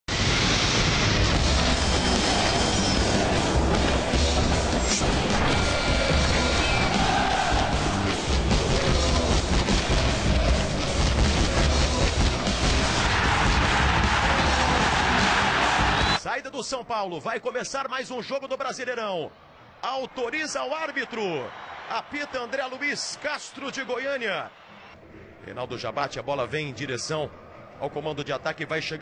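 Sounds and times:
music with heavy bass beat: 0.1s - 16.2s.

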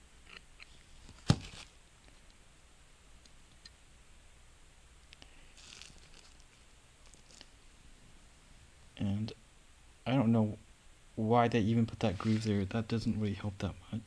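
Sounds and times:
plastic sheeting crinkle: 5.5s - 7.5s.

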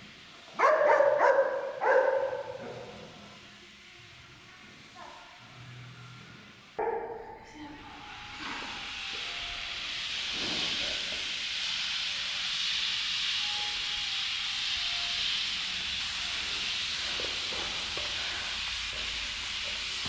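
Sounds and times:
sled scraping across turf: 10.1s - 11.2s.

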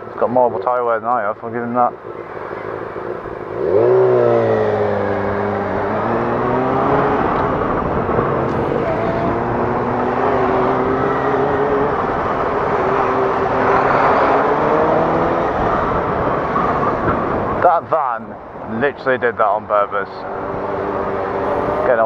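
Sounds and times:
wind noise on microphone: 2.0s - 18.7s
motorcycle engine revving: 2.1s - 17.6s, 20.2s - 22.0s.

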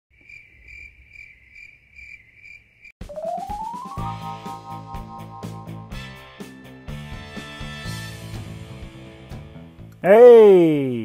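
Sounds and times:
cricket chirping: 0.1s - 3.0s.

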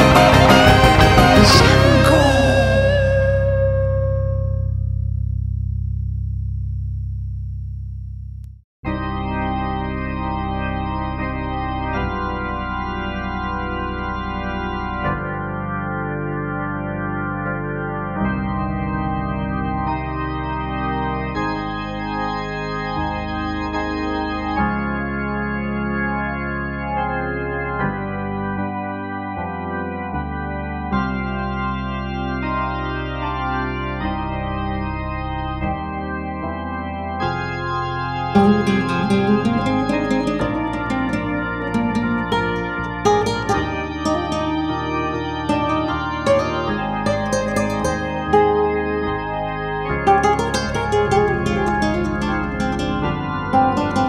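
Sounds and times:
ringing chord: 0.0s - 5.3s, 37.2s - 54.0s
sustained organ chords: 0.0s - 54.0s.

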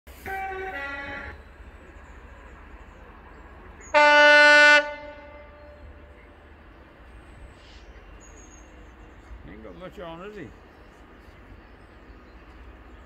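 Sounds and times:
diesel locomotive horn blasts: 0.1s - 1.5s, 3.9s - 5.8s.

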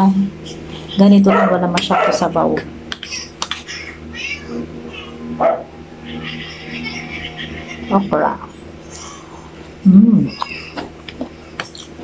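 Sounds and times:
high-pitched animal calls: 3.2s - 9.5s.

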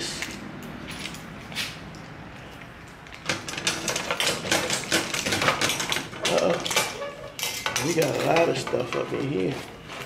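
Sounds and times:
mailbox door clicking and rattling: 3.2s - 7.0s.

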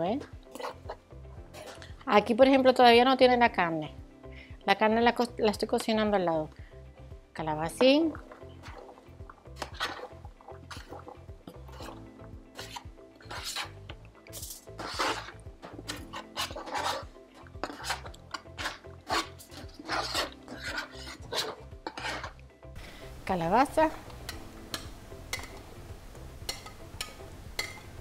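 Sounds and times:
plastic spoon scraping cutting board: 0.5s - 1.9s, 9.6s - 22.4s.

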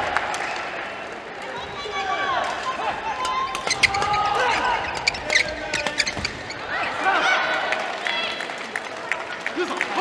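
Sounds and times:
shoes squeaking on floor: 3.6s - 6.8s.

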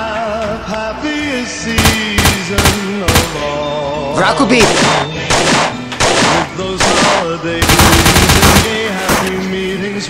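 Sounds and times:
automatic gunfire bursts: 1.8s - 3.5s, 4.6s - 9.3s.

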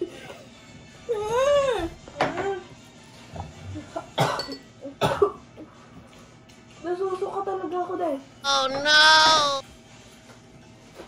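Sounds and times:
person coughing: 4.2s - 5.4s.

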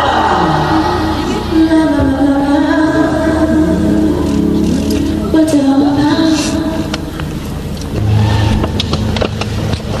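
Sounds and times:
loud low bass drone: 6.6s - 10.0s.

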